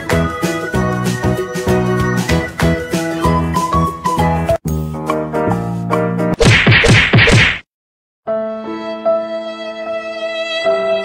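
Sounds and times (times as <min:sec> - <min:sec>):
slow music with long held notes: 0:08.3 - 0:11.0.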